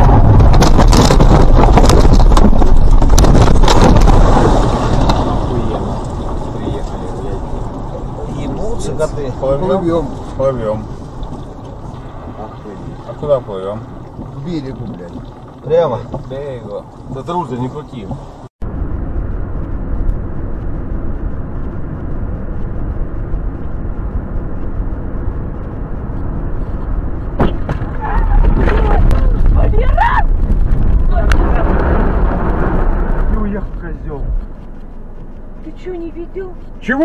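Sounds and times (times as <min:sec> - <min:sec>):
car road and engine rumble: 0:00.0 - 0:37.0
sharp knocks of car crash: 0:27.3 - 0:29.7.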